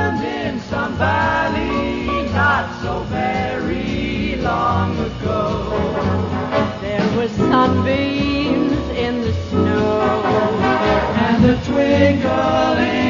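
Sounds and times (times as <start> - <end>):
band playing: 0.0 - 13.0
vocal group singing in harmony: 0.0 - 13.0.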